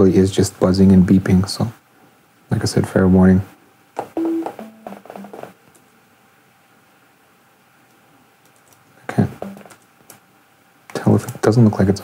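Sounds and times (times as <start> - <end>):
low electronic synth beeps: 4.2 - 5.4.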